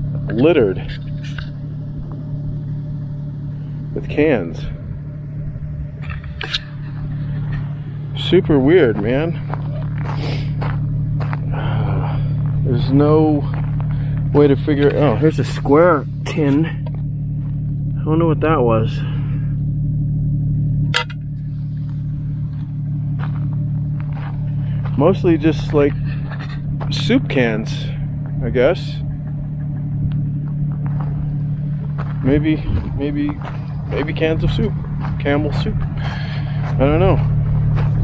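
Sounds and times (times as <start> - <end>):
steady low rumble: 0.0 - 38.0.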